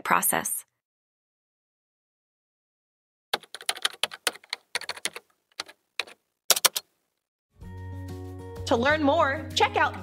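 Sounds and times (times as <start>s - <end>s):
computer keyboard typing: 3.4s - 6.9s.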